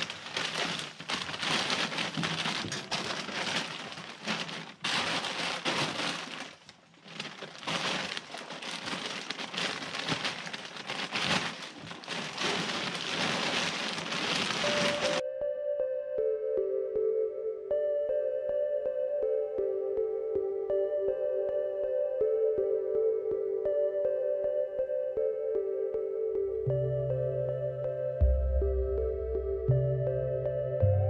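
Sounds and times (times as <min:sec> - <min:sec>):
feed bag rustling: 0:00.0 - 0:15.2
soft music: 0:13.9 - 0:31.0.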